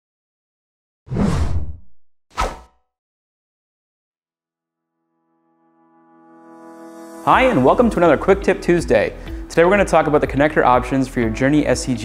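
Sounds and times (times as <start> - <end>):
whoosh and hit: 1.1 - 2.8.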